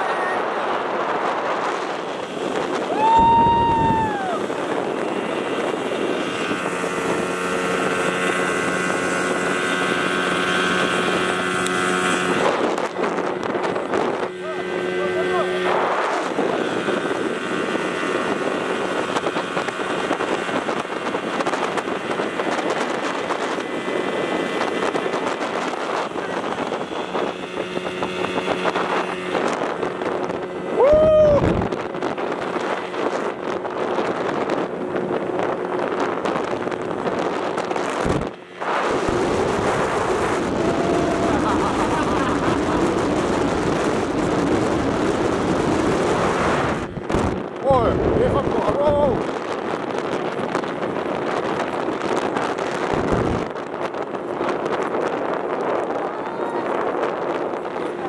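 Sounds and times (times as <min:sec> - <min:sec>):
water rushing: 0:00.0 - 0:34.3, 0:35.4 - 0:49.3
outboard motor running: 0:00.0 - 0:58.0
wind buffeting microphone: 0:00.0 - 0:58.0
person whooping: 0:02.9 - 0:04.5, 0:30.7 - 0:31.6, 0:40.5 - 0:42.3.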